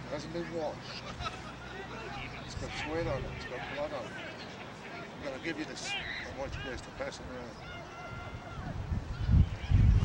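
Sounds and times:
low rumbling wind buffeting microphone: 7.7 - 10.0.

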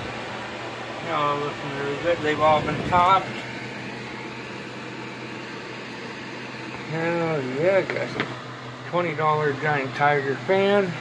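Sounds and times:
electric fan running: 0.0 - 11.0.

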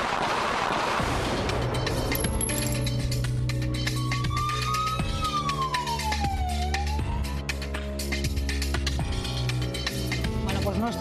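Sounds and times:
bass-heavy music: 1.4 - 11.0
siren-like wailing tone: 4.5 - 7.4.

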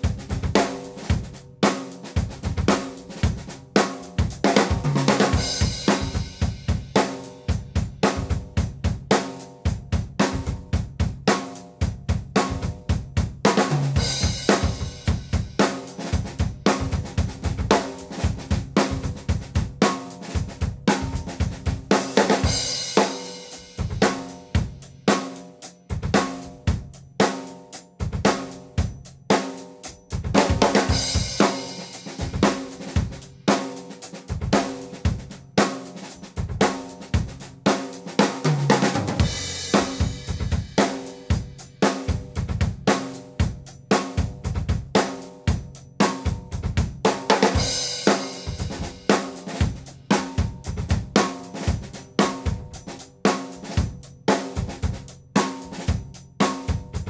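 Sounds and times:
drum kit groove: 0.0 - 57.0.

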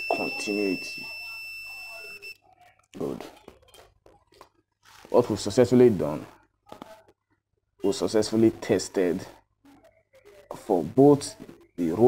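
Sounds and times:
multimeter continuity beep: 0.0 - 2.4.

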